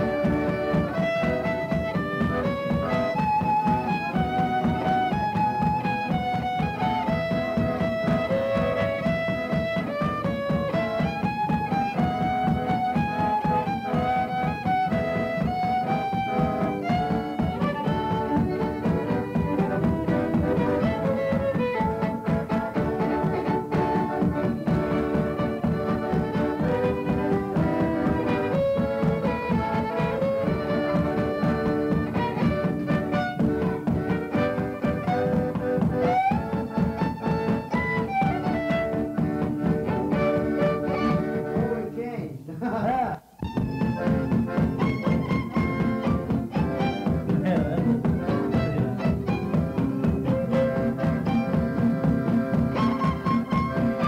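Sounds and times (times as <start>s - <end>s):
fiddle melody: 0.0s - 42.2s, 43.3s - 54.0s
guitar strumming beat: 0.0s - 54.0s.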